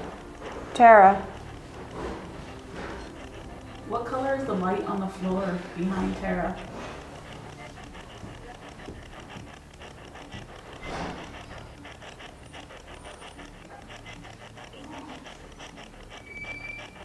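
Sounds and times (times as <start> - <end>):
fast radio chopping noise: 0.0 - 17.0.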